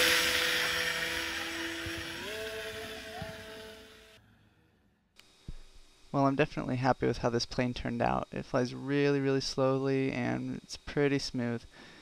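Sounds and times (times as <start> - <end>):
electric motor and propeller whine: 0.0 - 4.2.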